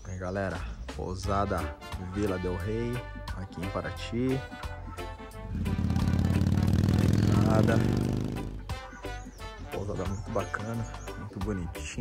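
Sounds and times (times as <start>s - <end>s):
vehicle engine passing by: 5.4s - 8.7s.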